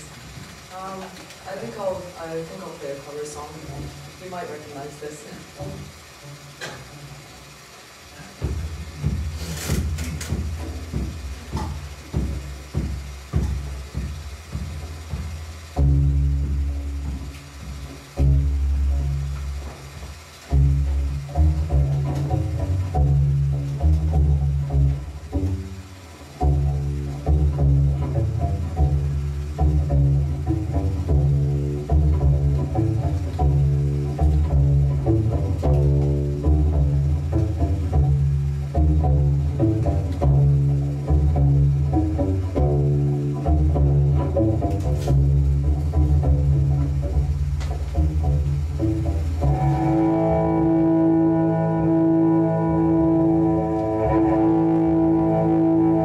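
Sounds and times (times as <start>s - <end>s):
cello playing low notes: 0.0s - 56.0s.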